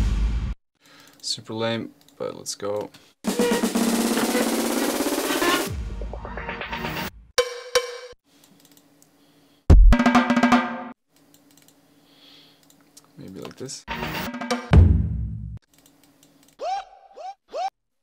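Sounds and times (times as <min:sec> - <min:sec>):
snare drum roll: 0:03.3 - 0:05.8.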